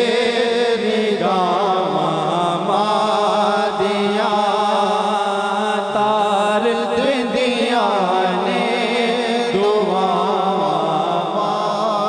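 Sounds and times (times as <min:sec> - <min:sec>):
man singing devotional melody: 0:00.0 - 0:12.0.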